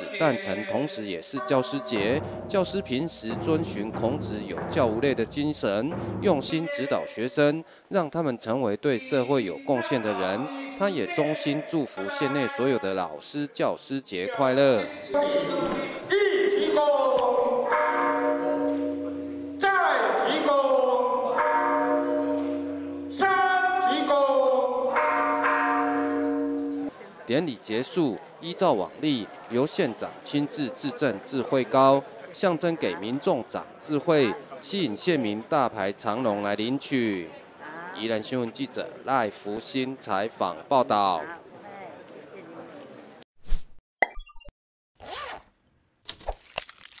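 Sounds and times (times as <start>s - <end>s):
long held ritual music note: 17.3s - 24.9s.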